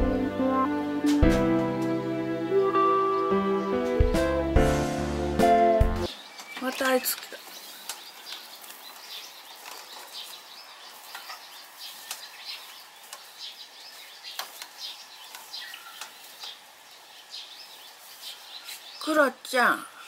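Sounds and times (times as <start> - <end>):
small birds chirping: 6.0 - 20.0.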